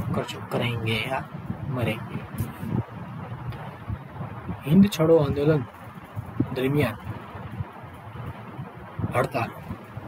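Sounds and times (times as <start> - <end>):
low background rumble and hiss: 0.0 - 10.0.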